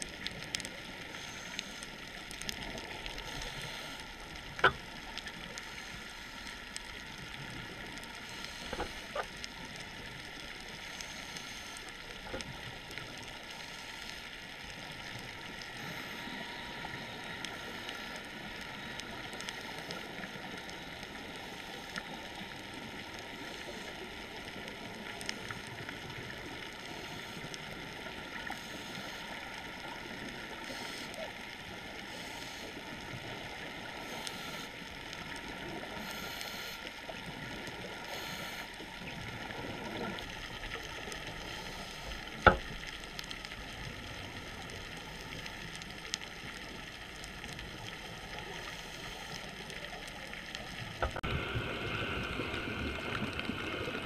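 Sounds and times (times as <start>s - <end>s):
underwater hiss: 2.6s - 4.1s, 8.2s - 9.2s, 28.4s - 29.4s, 30.5s - 31.3s, 31.9s - 33.0s, 33.6s - 34.8s, 35.8s - 37.0s, 37.8s - 38.8s, 41.3s - 42.6s, 48.4s - 49.7s.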